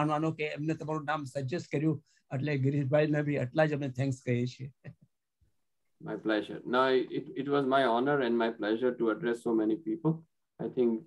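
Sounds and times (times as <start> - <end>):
man talking: 6.0 - 11.0.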